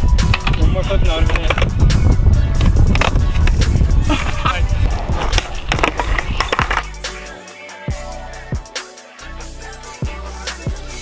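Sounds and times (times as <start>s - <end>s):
skateboard wheels rolling on concrete: 0.0s - 7.4s
music: 0.0s - 11.0s
skateboard clacks: 1.2s - 1.7s, 5.1s - 6.9s.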